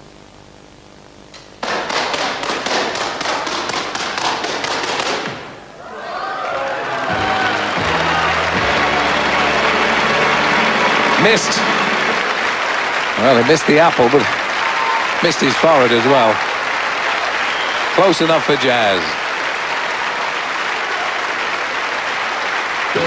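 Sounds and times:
audience applauding and cheering: 0:01.6 - 0:23.0
music: 0:06.9 - 0:12.8.

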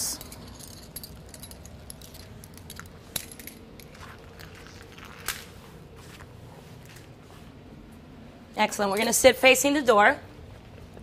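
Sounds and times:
metal clips clicking and clinking: 0:00.0 - 0:04.0.

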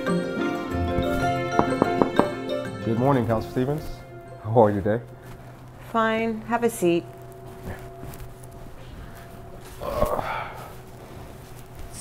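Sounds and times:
low room hum: 0:04.2 - 0:12.0
rustle of sitting in office chair: 0:04.6 - 0:12.0
person grunting: 0:09.8 - 0:10.6.

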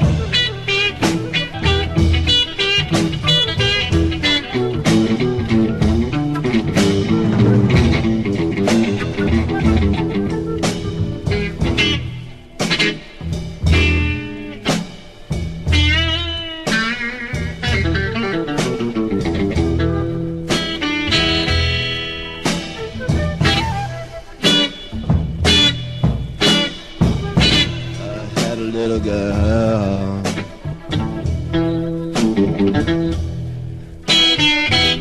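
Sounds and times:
bass guitar: 0:00.0 - 0:35.0
drum kit: 0:00.0 - 0:35.0
electric guitar: 0:00.0 - 0:35.0.

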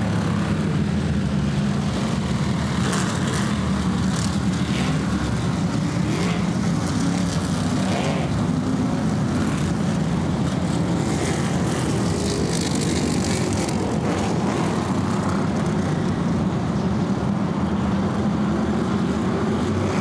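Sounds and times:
race car engines droning: 0:00.0 - 0:20.0.

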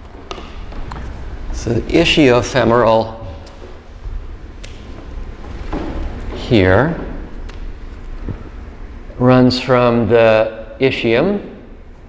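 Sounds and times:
low room rumble: 0:00.0 - 0:12.0
person speaking: 0:01.5 - 0:03.8.

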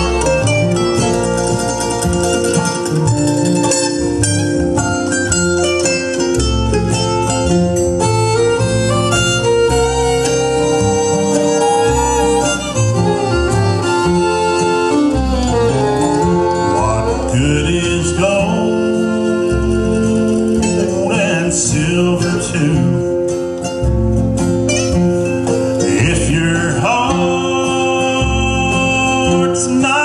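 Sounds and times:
acoustic guitar strumming: 0:00.0 - 0:30.0
man singing: 0:16.4 - 0:23.2, 0:25.8 - 0:30.0.

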